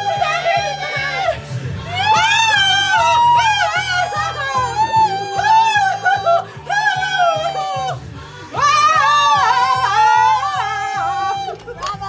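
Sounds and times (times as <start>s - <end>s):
young men singing pop song: 0.0s - 12.0s.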